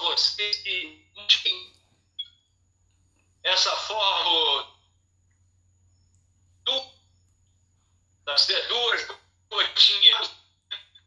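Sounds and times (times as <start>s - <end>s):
man talking over phone call: 0.0s - 1.8s, 3.4s - 4.8s, 6.7s - 7.0s, 8.2s - 11.0s.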